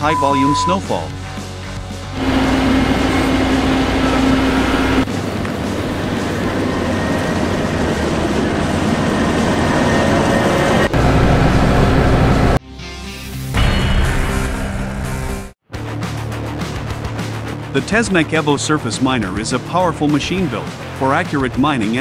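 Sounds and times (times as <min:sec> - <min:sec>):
tractor engine running: 0:01.7 - 0:12.6
steady hum: 0:02.2 - 0:06.5.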